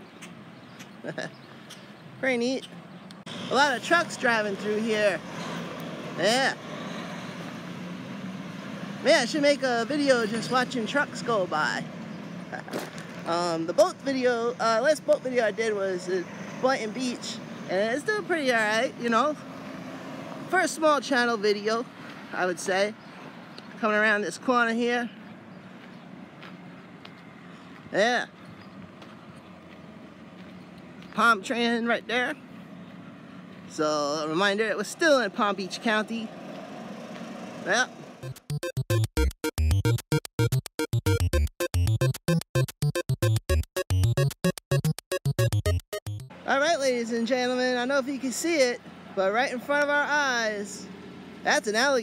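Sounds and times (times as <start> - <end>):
road noise: 0.0 - 52.0
truck engine humming: 0.0 - 52.0.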